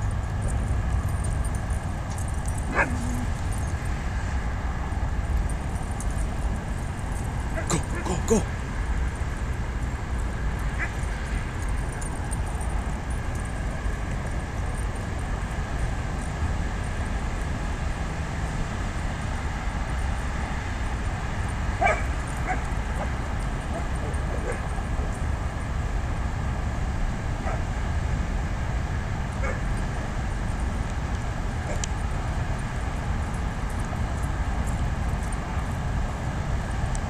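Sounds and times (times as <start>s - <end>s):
dogs barking and yipping: 0.0s - 4.2s, 4.9s - 18.0s, 19.8s - 25.8s, 27.4s - 27.8s, 29.2s - 37.0s.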